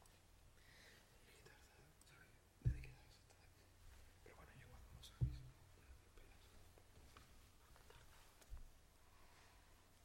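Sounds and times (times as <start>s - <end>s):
people whispering: 4.2s - 6.6s.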